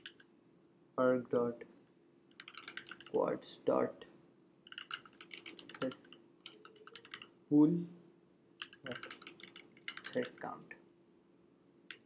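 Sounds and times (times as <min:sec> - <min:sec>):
computer keyboard typing: 0:00.0 - 0:00.2, 0:02.3 - 0:03.2, 0:04.7 - 0:07.3, 0:08.6 - 0:10.4.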